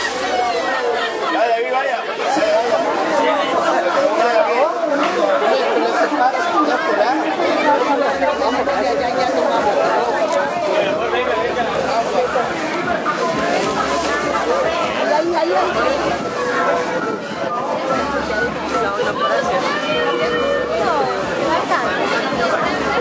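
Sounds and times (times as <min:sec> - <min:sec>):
chatter of voices: 0:00.0 - 0:23.0.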